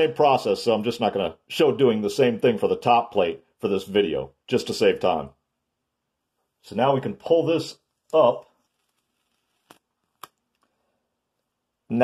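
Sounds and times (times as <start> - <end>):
plastic film crackling: 8.0 - 10.8.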